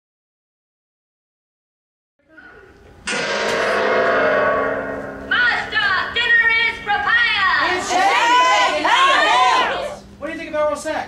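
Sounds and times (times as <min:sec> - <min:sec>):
large gong ringing: 0:03.0 - 0:06.2.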